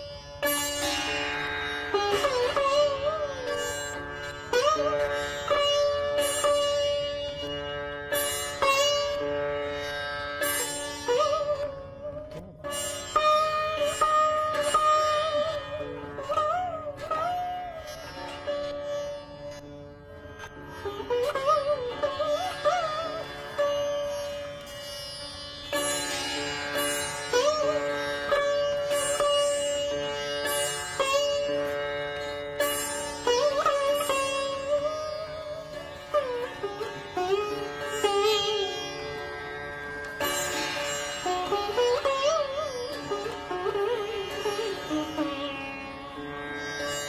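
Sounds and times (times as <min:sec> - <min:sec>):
sitar plucked notes: 0:00.0 - 0:47.0.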